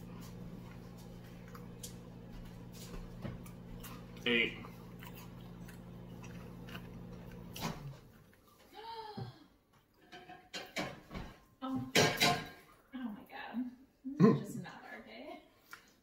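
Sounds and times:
microwave oven humming: 0.0s - 8.2s
kitchen clatters and knocks: 10.0s - 12.7s.

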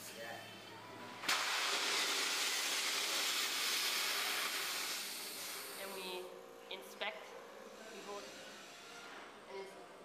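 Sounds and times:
compressed air hissing into raft: 1.3s - 5.9s.

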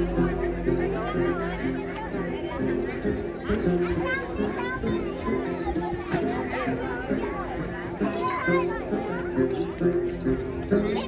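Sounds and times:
children chattering: 0.0s - 11.0s
plucked lute folk music: 0.0s - 11.0s
voices: 0.0s - 11.0s.

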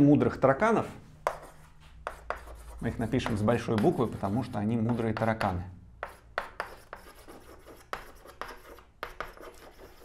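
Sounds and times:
chalk tapping and scraping: 1.2s - 10.0s.

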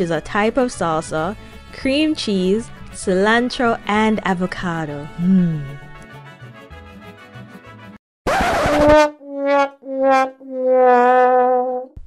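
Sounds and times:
comic trombone sound effect: 8.3s - 11.9s.

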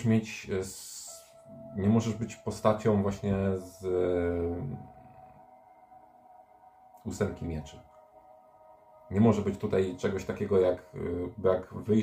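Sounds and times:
soft ambient background music: 0.0s - 12.0s.

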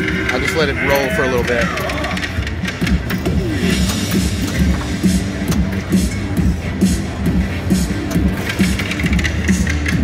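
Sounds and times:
pinball machine game music: 0.0s - 10.0s.

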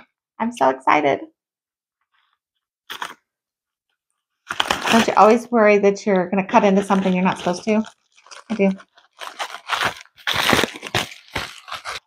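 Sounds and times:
scissors cutting plastic bag: 2.9s - 3.2s, 4.5s - 5.4s, 6.6s - 12.0s.

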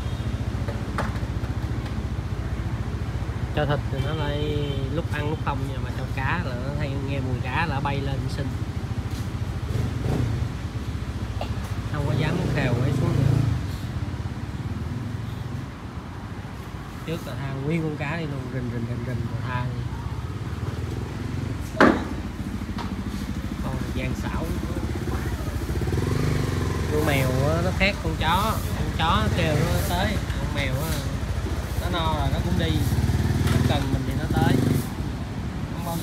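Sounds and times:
motorcycle engine running: 20.3s - 34.9s.

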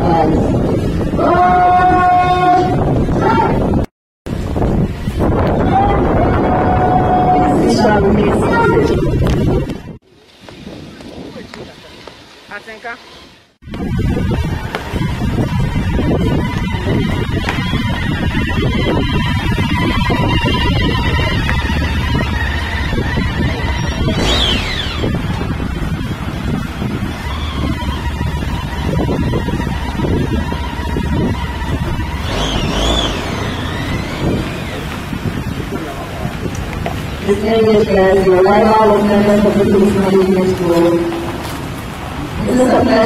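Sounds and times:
din of vehicle engines: 7.2s - 43.0s
siren wails: 13.7s - 35.9s.

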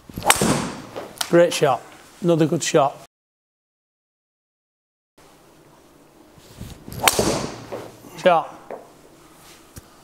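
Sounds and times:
golf club striking ball: 7.0s - 7.8s.

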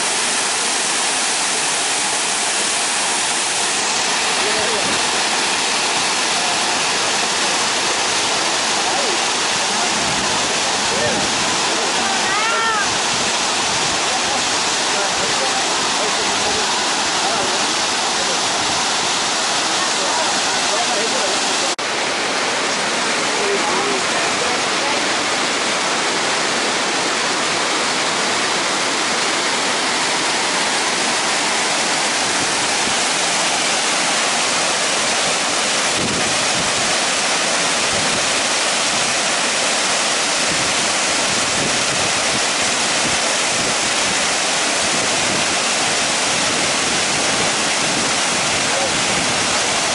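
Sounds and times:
waterfall rushing: 0.0s - 49.9s.

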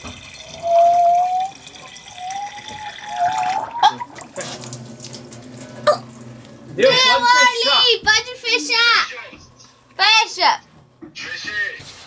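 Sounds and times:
water pouring from a hose: 0.0s - 5.7s.

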